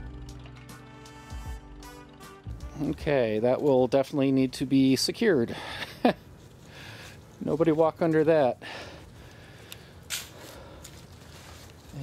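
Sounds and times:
faint rustling: 5.8 - 12.0.

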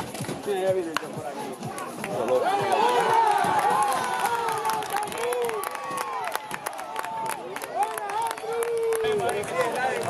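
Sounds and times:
voices shouting and cheering: 0.7 - 10.0
people clapping: 1.8 - 10.0.

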